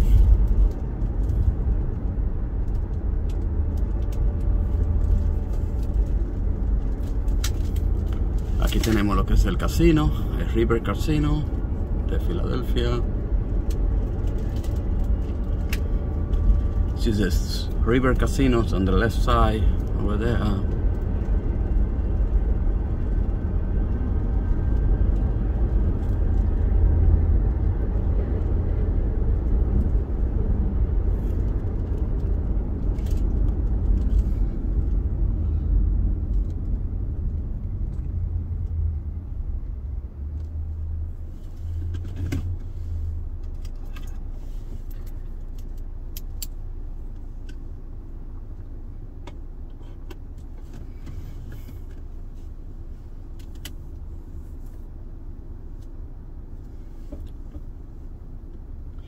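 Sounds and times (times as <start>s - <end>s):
car driving rumble inside cabin: 0.0s - 59.0s
car engine idle hum: 0.0s - 59.0s.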